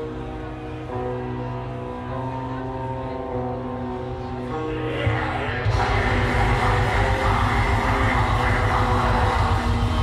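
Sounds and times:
metal band droning chord: 4.6 - 10.0.

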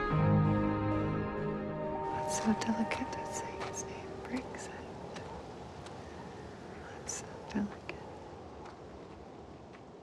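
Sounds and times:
boots crunching on gravelly ground: 2.2 - 4.5.

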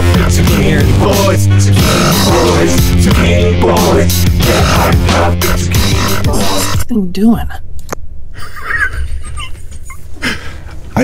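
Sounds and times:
men laughing quietly: 8.3 - 11.0.

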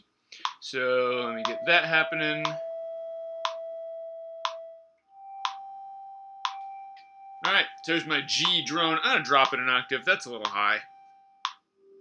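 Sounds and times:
steady drone tone: 0.9 - 12.0
metronome clicking: 1.2 - 1.7, 2.4 - 2.6, 3.4 - 3.6, 4.4 - 4.6, 5.4 - 5.7, 6.4 - 11.6.

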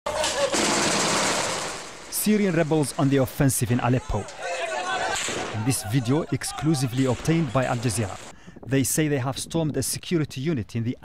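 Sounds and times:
automatic gunfire: 0.2 - 2.6.

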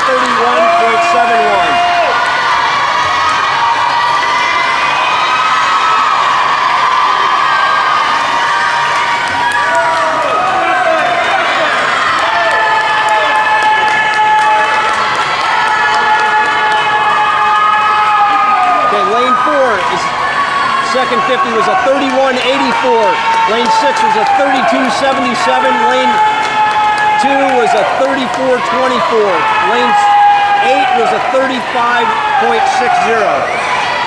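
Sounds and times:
crowd cheering: 0.0 - 34.0
young voices yelling: 0.0 - 34.0.

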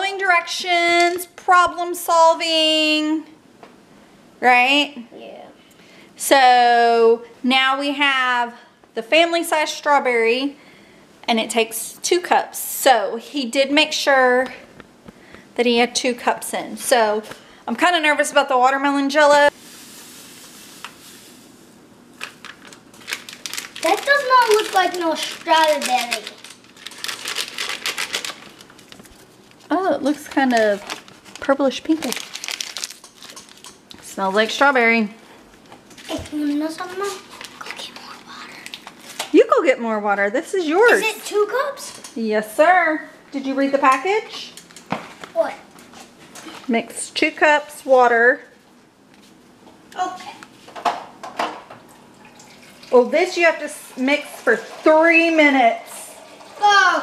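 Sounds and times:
paper packet crinkling: 22.2 - 34.0, 35.9 - 39.3
water pouring into plastic cup: 52.2 - 53.1, 56.1 - 57.0.

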